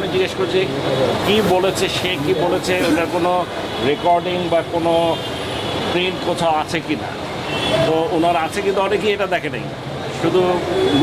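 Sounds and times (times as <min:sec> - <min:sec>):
man speaking: 0:00.0 - 0:05.2.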